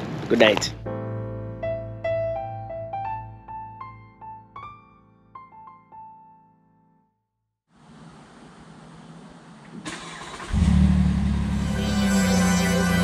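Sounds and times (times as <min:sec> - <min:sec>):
music: 0:00.4 - 0:07.4, 0:11.6 - 0:13.0
vehicle engine running: 0:10.4 - 0:13.0.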